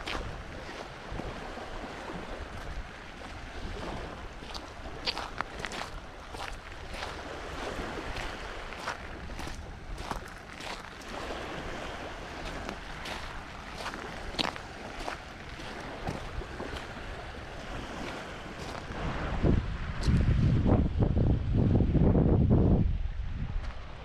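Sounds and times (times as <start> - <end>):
small waves washing: 0.0 - 20.0
wind rumble on microphone: 0.0 - 24.0
footsteps crunching on pebbles: 4.4 - 11.2, 12.4 - 17.0.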